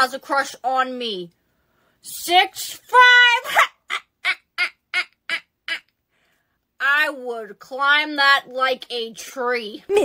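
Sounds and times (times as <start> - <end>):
woman laughing: 3.4 - 5.9.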